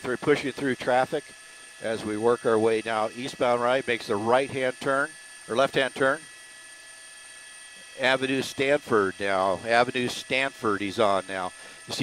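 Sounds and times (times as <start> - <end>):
speech: 0.0 - 1.2, 1.8 - 6.2, 8.0 - 12.0
thin steady tones: 0.0 - 12.0.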